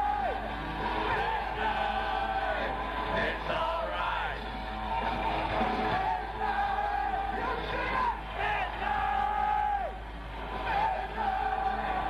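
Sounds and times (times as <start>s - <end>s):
crowd: 0.0s - 12.0s.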